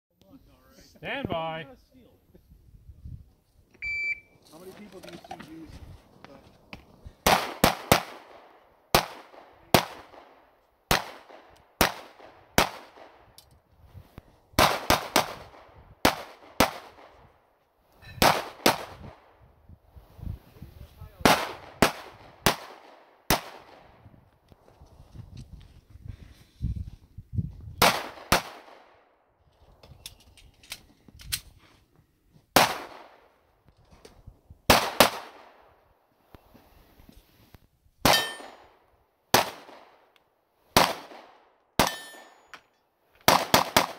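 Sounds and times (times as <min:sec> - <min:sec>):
pistol shots echoing: 0:07.2 - 0:13.1, 0:21.2 - 0:23.8, 0:38.0 - 0:38.6, 0:40.8 - 0:42.4, 0:43.3 - 0:43.9.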